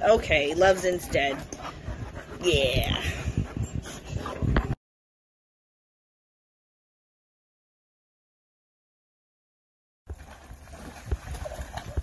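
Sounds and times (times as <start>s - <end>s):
dogs splashing in water: 10.1s - 12.0s.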